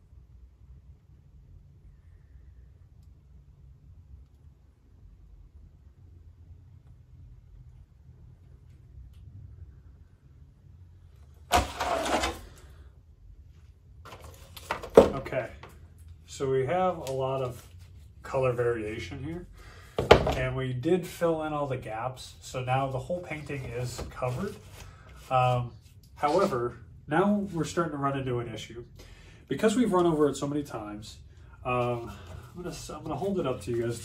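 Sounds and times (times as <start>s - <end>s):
paint scraper scraping canvas: 11.5s - 12.6s
short loud scrape: 11.5s - 12.6s.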